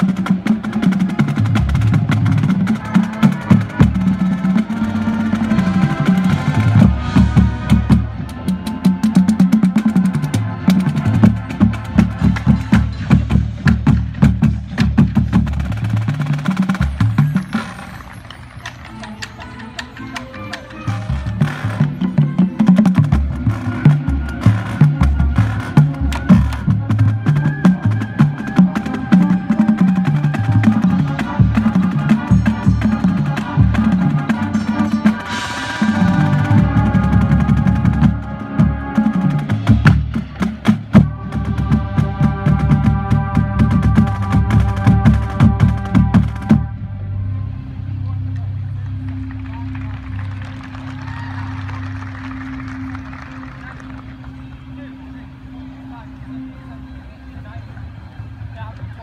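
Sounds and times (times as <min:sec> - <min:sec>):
drumline playing: 0:00.0 - 0:56.4
wind instruments holding chords: 0:00.0 - 0:59.0.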